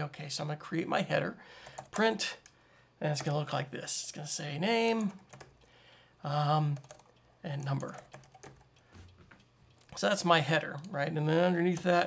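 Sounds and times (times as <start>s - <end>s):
computer keyboard typing: 1.6s - 2.6s, 4.9s - 5.7s, 6.7s - 8.8s.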